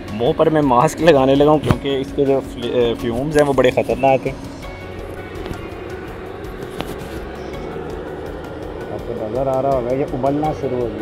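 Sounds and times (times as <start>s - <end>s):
background music: 0.0s - 11.0s
gas torch flame: 1.0s - 11.0s.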